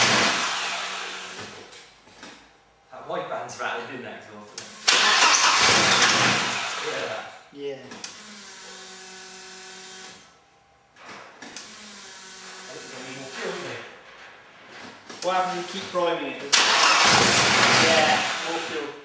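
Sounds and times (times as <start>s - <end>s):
starter cranking engine: 4.8s - 6.9s, 16.5s - 18.6s
steady hum: 5.6s - 16.4s.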